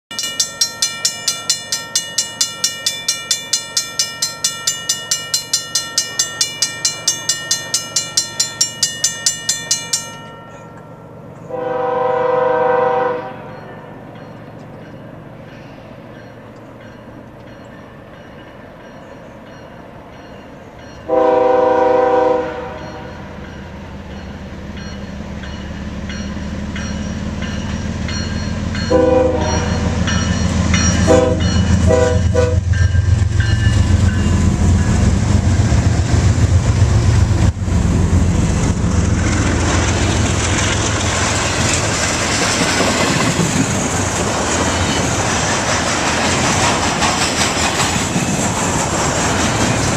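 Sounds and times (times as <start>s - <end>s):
railroad crossing bell ringing: 0.1s - 35.7s, 38.4s - 46.5s
train horn blasts: 11.4s - 13.7s, 21.0s - 23.4s, 28.9s - 30.1s, 31.0s - 32.8s
locomotive engine rumble: 22.1s - 49.9s.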